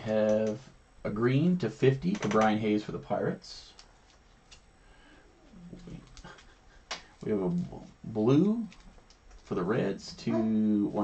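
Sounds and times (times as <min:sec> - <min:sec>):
dog whimpering faintly: 0:10.2 - 0:11.0.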